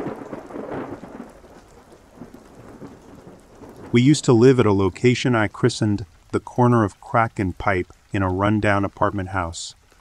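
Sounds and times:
thunder rolling: 0:00.0 - 0:06.0
steady rain: 0:00.0 - 0:10.0.

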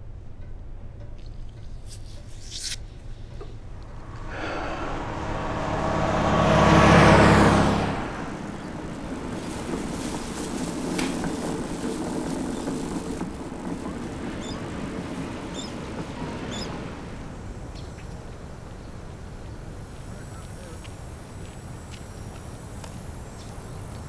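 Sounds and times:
outdoor background noise: 0:00.0 - 0:24.0
car passing close by: 0:03.4 - 0:19.8.

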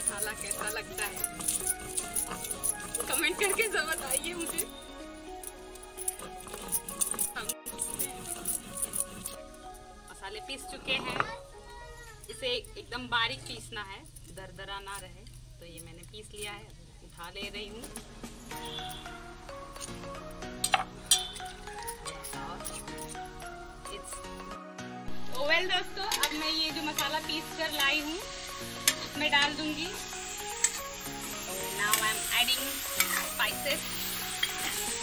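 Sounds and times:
stone roller grinding on stone: 0:00.0 - 0:04.7, 0:06.0 - 0:09.4
sharp clinks: 0:00.0 - 0:04.8, 0:20.6 - 0:24.4
background music: 0:00.0 - 0:35.0.

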